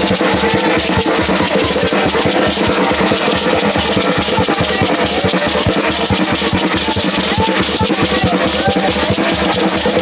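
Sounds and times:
hand drum and stick drum beat: 0:00.0 - 0:10.0
shaker rattling: 0:00.0 - 0:10.0.

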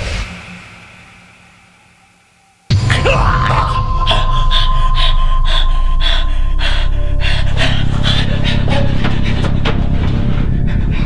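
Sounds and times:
low rumble: 0:02.7 - 0:11.0.

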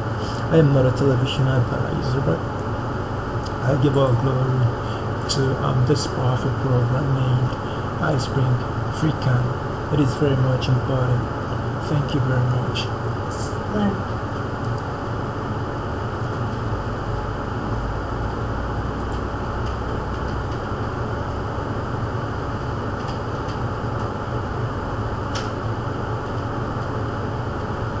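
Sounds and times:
low background hum: 0:00.0 - 0:28.0.

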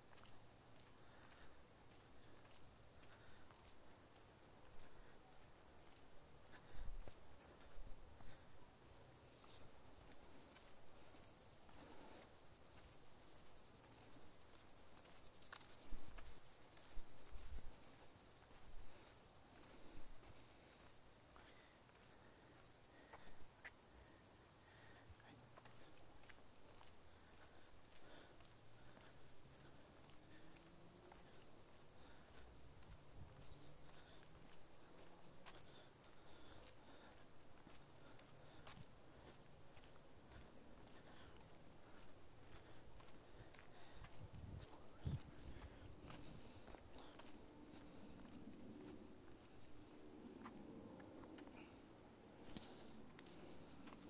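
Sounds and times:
insects buzzing: 0:00.0 - 0:54.0.

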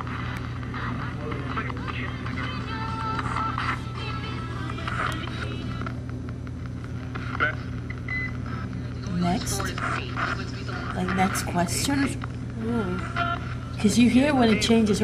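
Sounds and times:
choppy radio voices: 0:00.0 - 0:15.0
steady hum: 0:00.0 - 0:15.0
radio scanner sweeping stations: 0:07.0 - 0:12.1.

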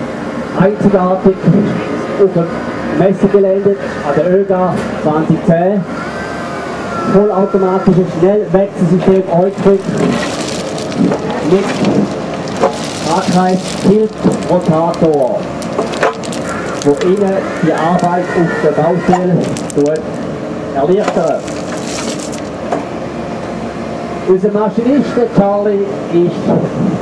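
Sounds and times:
excavator engine droning: 0:05.8 - 0:25.4
rock and gravel crunching: 0:09.1 - 0:22.7.

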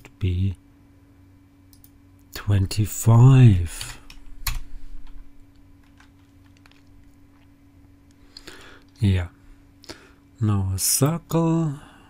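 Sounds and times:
computer keyboard keystrokes: 0:05.8 - 0:07.0.

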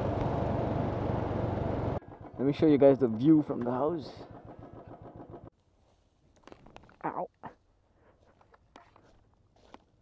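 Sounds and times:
motorcycle engine idling: 0:00.0 - 0:05.5.

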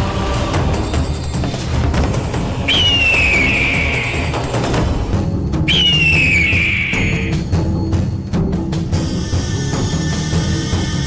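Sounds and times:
dramatic background score: 0:00.0 - 0:11.0
high whistle-like tone sliding down: 0:02.7 - 0:04.3, 0:05.7 - 0:07.3.

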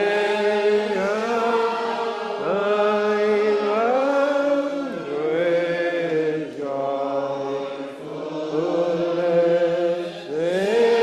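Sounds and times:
congregation singing unaccompanied: 0:00.0 - 0:11.0.

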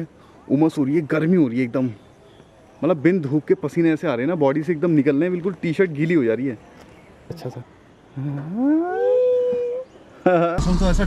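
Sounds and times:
person howling ooo: 0:08.4 - 0:09.9
man talking: 0:10.6 - 0:11.0.

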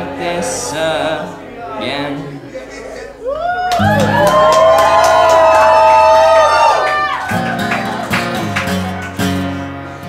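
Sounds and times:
acoustic guitar strumming: 0:07.3 - 0:10.0.

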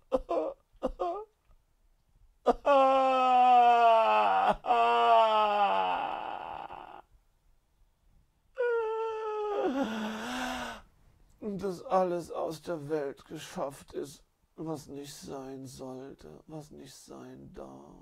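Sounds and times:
man wailing: 0:02.5 - 0:07.0, 0:08.6 - 0:10.8.

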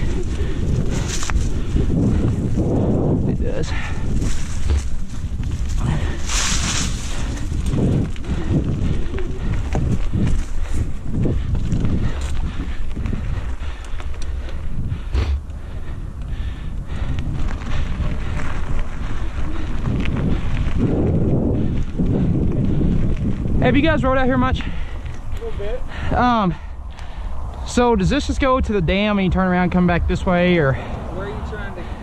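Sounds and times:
wind buffeting microphone: 0:00.0 - 0:32.0.

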